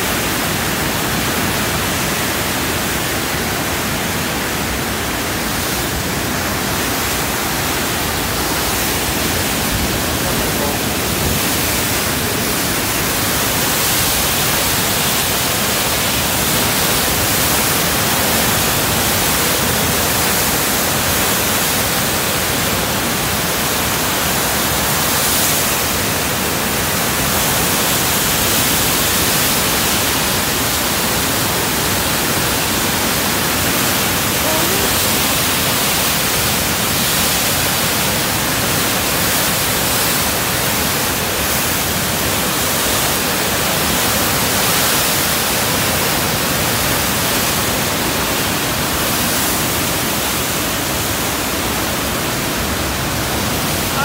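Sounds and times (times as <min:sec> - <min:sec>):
river rapids rushing: 0:00.0 - 0:54.0.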